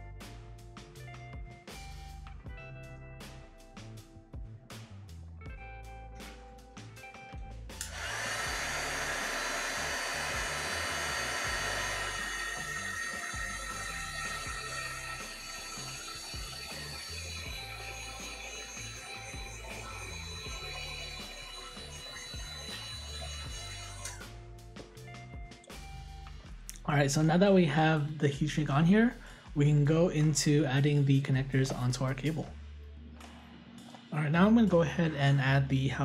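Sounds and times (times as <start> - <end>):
heat gun blowing air: 7.8 - 24.2.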